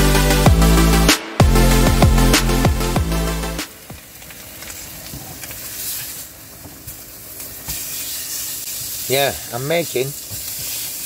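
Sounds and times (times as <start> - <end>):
electronic music with heavy bass: 0.0 - 3.7
meat sizzling in a frying pan: 3.8 - 11.0.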